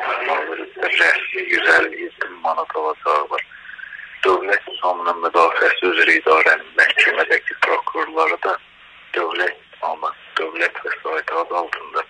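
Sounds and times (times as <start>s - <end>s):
person speaking over phone: 0.0s - 12.0s.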